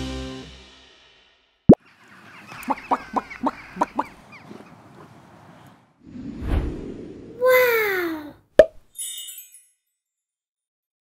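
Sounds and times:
high twinkling sparkle: 0:08.9 - 0:09.9.

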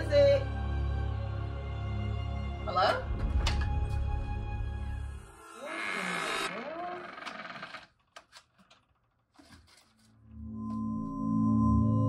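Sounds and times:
wavering door creak: 0:05.3 - 0:09.8.

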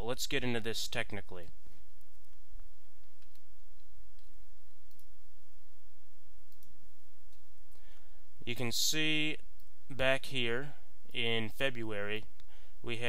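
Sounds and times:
steady low hum: 0:00.0 - 0:13.0
computer mouse clicks: 0:03.0 - 0:05.2, 0:06.5 - 0:07.4.

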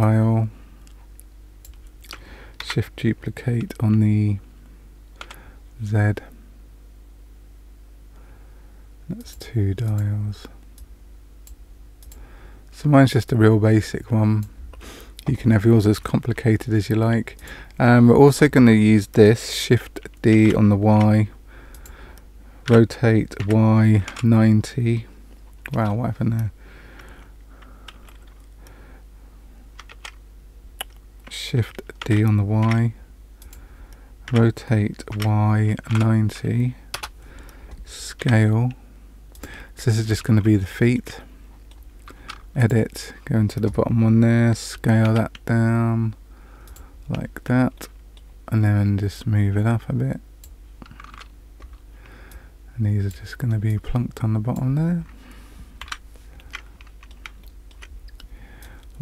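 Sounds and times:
faint steady hum: 0:00.0 - 0:59.0
keyboard keystrokes clicking: 0:22.7 - 0:24.4, 0:29.8 - 0:30.2, 0:30.8 - 0:33.6, 0:34.3 - 0:36.2, 0:36.9 - 0:37.2, 0:55.8 - 0:58.3.

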